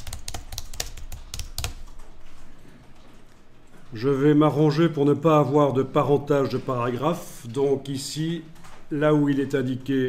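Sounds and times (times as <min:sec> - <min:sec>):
computer keyboard typing: 0:00.0 - 0:03.4.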